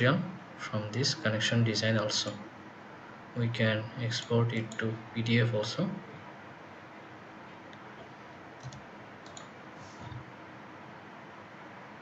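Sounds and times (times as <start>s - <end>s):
faint room and microphone hiss: 0.0s - 12.0s
computer mouse clicking: 8.6s - 10.2s.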